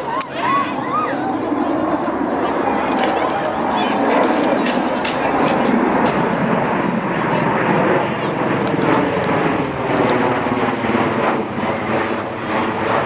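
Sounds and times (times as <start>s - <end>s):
aircraft rotors droning overhead: 0.0s - 13.0s.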